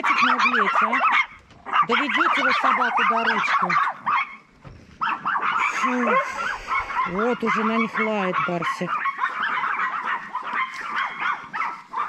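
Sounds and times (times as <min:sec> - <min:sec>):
small dogs yapping: 0:00.0 - 0:12.0.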